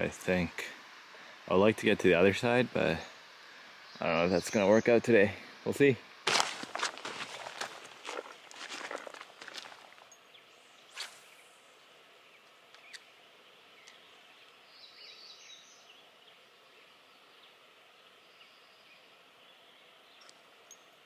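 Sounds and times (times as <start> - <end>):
faint background hiss: 0.0 - 21.0.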